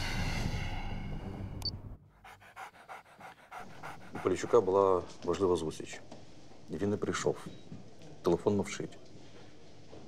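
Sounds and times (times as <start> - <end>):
dog panting: 2.1 - 5.2.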